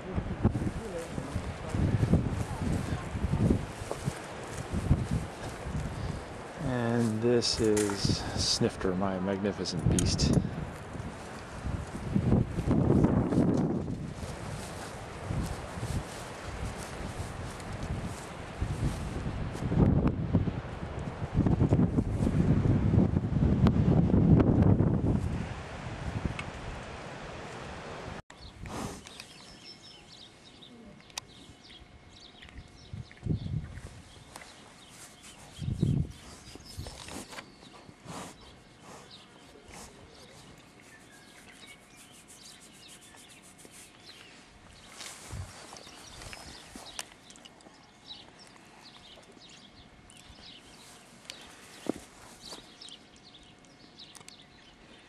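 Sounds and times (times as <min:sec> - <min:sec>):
wind buffeting microphone: 0:00.0 - 0:06.6, 0:09.7 - 0:27.0, 0:31.7 - 0:34.6, 0:35.5 - 0:37.2, 0:44.8 - 0:47.0
quiet outdoor background: 0:00.0 - 0:55.0
birds chirping: 0:28.3 - 0:45.1, 0:45.7 - 0:55.0.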